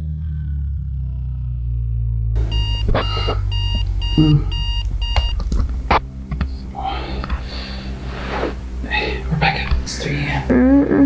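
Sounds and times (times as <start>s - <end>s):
electronic alarm beeping: 2.4s - 5.4s.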